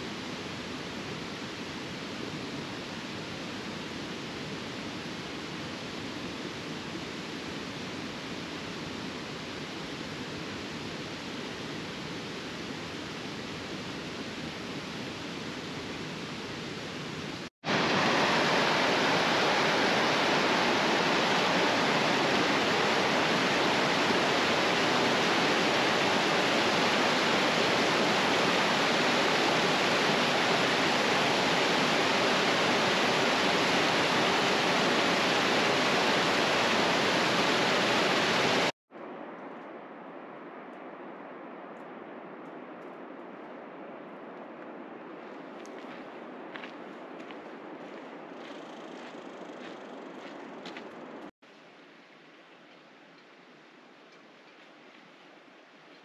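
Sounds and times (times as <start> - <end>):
creek cascading over rocks: 17.7 - 38.7.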